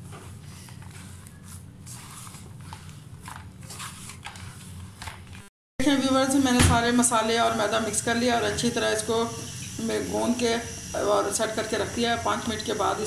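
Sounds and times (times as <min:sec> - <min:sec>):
hand squelching dough in bowl: 0:00.0 - 0:05.0.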